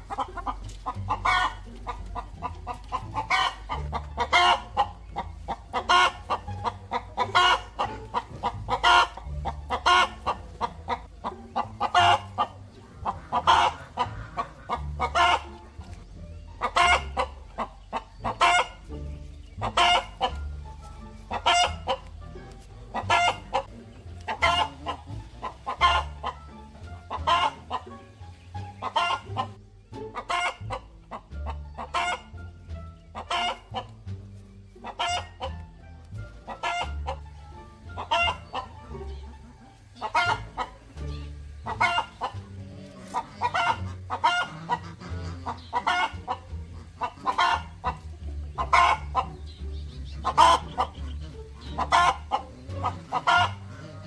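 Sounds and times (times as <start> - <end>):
chickens clucking: 0.0 - 54.0.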